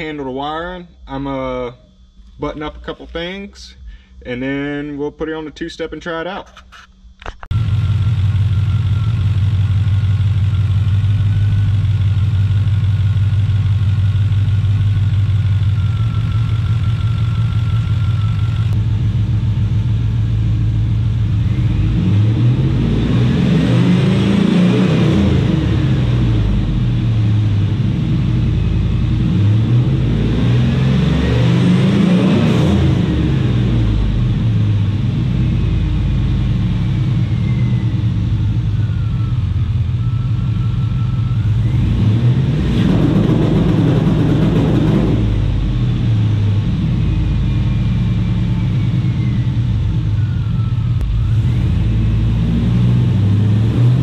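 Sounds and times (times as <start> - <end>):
pickup engine idling and revving: 7.3 - 54.0.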